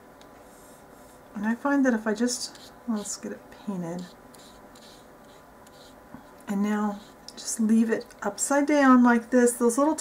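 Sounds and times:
paintbrush scratching on paper: 2.1s - 7.4s.

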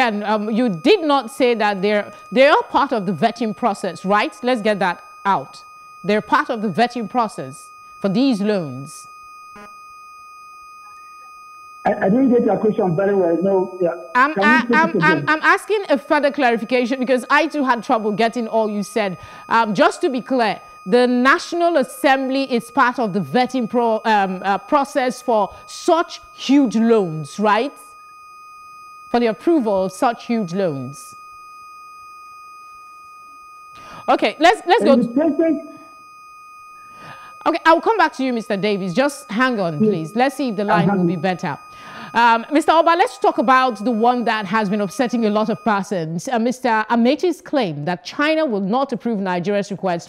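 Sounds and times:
high electronic tone: 0.0s - 28.1s, 28.9s - 31.5s, 32.3s - 46.7s
person speaking briefly: 14.4s - 15.2s.

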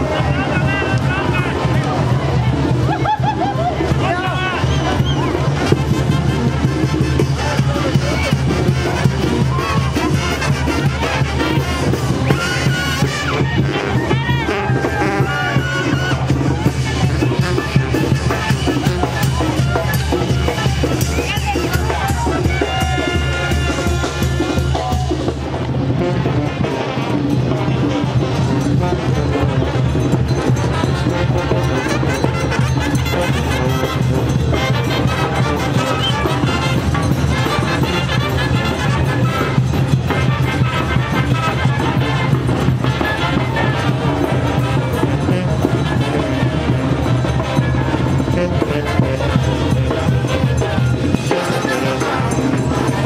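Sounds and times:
band music: 0.0s - 53.0s
steady drum beat: 0.0s - 53.0s.

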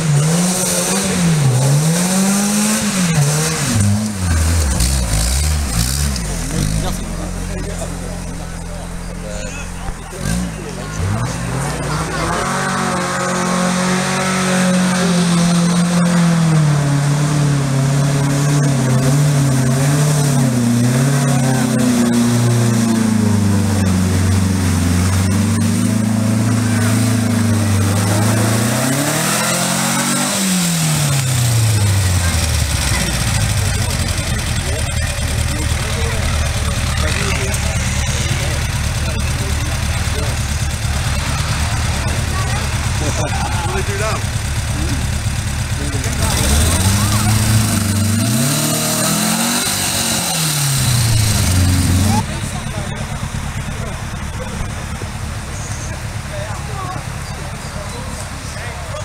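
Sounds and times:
car engine revving and idling: 0.0s - 59.0s.

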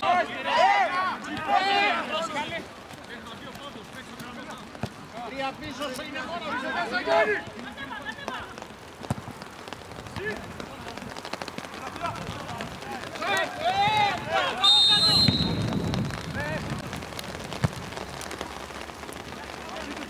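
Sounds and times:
players shouting: 0.0s - 8.7s, 10.1s - 16.6s
referee's whistle blast: 14.6s - 16.2s.

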